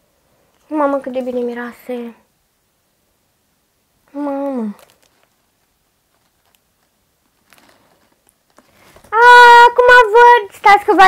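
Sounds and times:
plastic bottle rustling: 0.8 - 1.8, 4.4 - 9.2.

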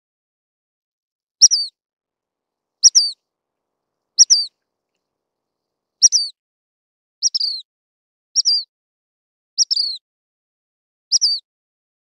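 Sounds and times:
bird giving high calls: 2.8 - 3.2, 4.2 - 4.5.

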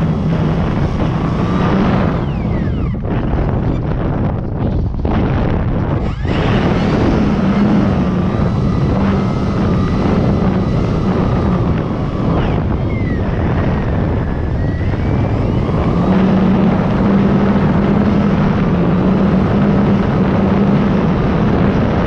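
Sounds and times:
high whine sliding in pitch: 0.0 - 4.4, 5.4 - 22.0
electric motor and propeller droning: 0.0 - 22.0
wind rushing over microphone: 0.0 - 22.0.

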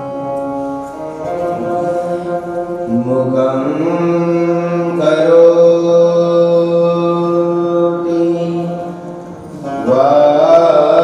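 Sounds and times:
man chanting: 1.3 - 11.0.

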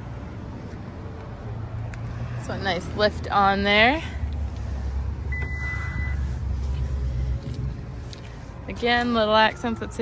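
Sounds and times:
high-pitched beep: 5.3 - 6.2.

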